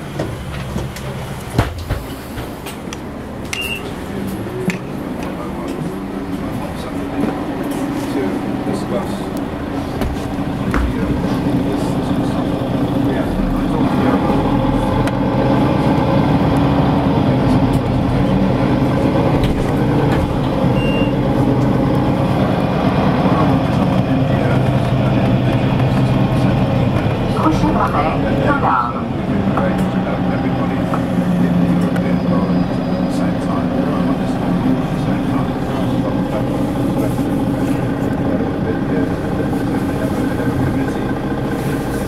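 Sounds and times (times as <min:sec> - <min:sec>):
bus engine droning: 0:00.0 - 0:42.0.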